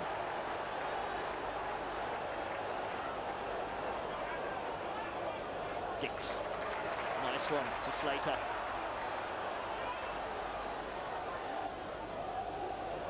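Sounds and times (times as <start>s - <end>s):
stadium crowd roar: 0.0s - 13.0s.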